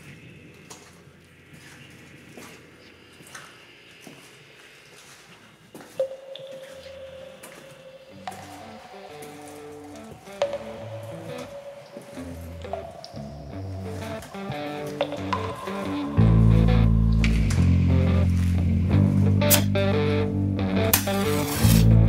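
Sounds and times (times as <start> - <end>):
lo-fi rock demo music: 6.0 - 22.0.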